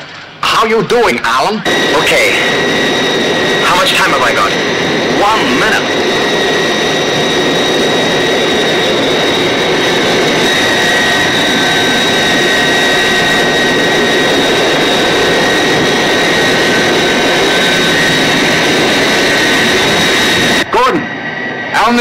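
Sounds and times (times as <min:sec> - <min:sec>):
high engine whine: 0:00.0 - 0:22.0
jet engines roaring: 0:00.0 - 0:22.0.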